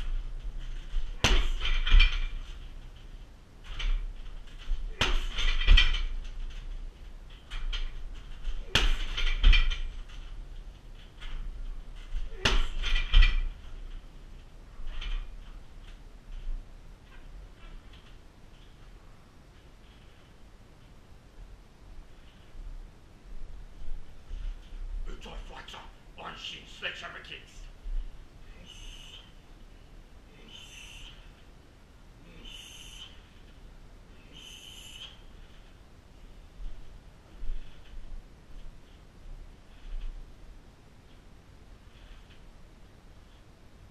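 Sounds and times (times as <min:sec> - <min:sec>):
kicks thudding on punching bag: 0:01.0 - 0:02.4, 0:04.7 - 0:06.1, 0:08.5 - 0:09.9, 0:12.1 - 0:13.5
man hissing exhales: 0:32.2 - 0:33.2.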